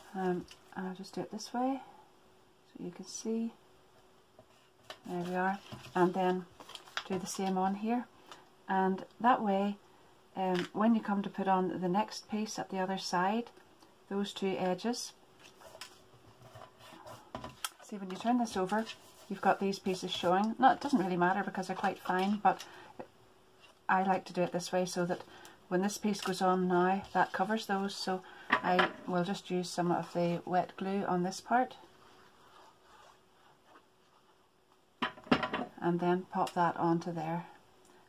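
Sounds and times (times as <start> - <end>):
card rustling: 4.9 - 7.5.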